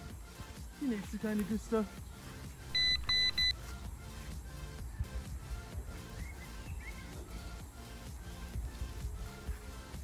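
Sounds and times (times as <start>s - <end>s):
background music: 0.0s - 10.0s
electronic beeps: 2.7s - 3.6s.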